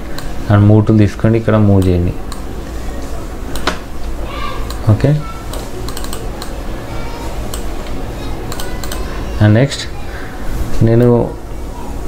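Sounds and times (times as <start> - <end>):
steady low hum: 0.0 - 12.0
keyboard clicks: 5.5 - 6.6, 7.4 - 9.1.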